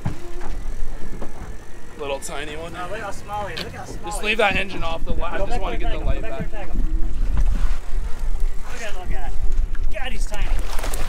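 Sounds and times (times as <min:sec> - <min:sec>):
wind buffeting microphone: 0:00.0 - 0:10.8
voices: 0:01.5 - 0:07.4.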